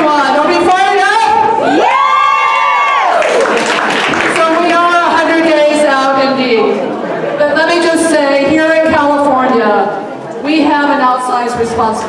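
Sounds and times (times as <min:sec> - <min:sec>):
woman whooping through microphone: 0:01.6 - 0:03.3.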